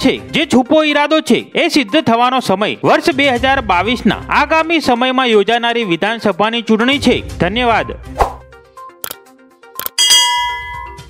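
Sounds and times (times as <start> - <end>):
mouse clicks: 9.8 - 10.0
bright bell ding: 9.9 - 11.0.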